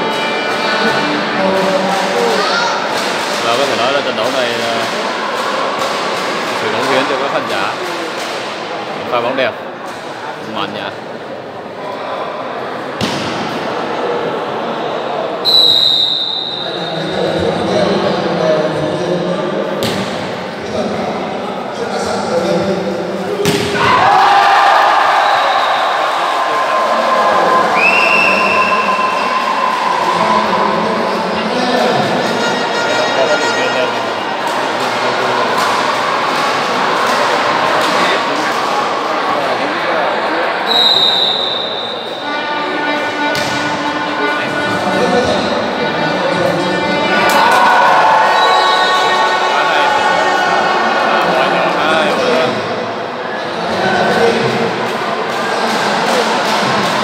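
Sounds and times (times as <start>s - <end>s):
spectators cheering and shouting: 0.0s - 8.2s, 22.0s - 57.0s
referee's whistle: 15.4s - 16.9s, 27.8s - 29.4s, 40.7s - 42.3s, 48.2s - 49.3s
volleyball struck with thuds: 19.8s - 20.3s, 43.3s - 43.6s.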